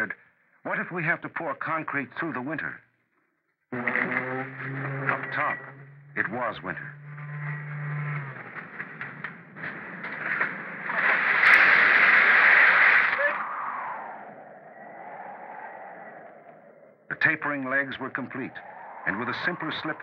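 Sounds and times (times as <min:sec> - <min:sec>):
low steady hum: 0:03.7 - 0:08.8
faint muffled radio voices: 0:17.1 - 0:20.0.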